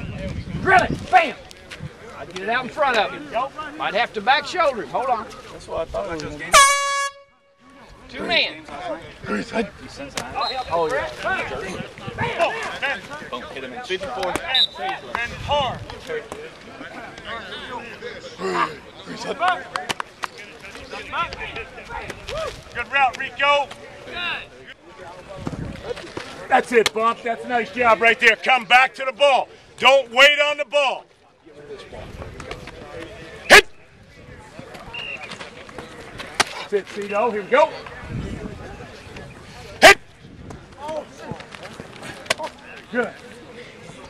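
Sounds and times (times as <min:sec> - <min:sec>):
low field noise: 0:00.0 - 0:44.0
faint distant voices: 0:07.2 - 0:44.0.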